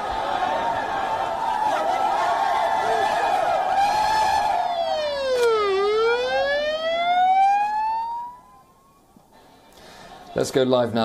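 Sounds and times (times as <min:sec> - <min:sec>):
crowd noise: 0:00.0 - 0:11.0
siren wailing: 0:02.7 - 0:09.1.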